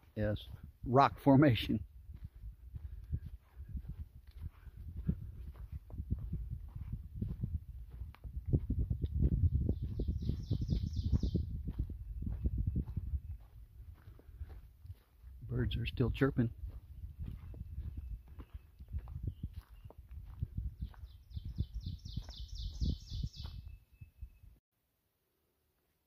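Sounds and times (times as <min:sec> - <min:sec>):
footsteps on forest trail: 0:00.0 - 0:23.8.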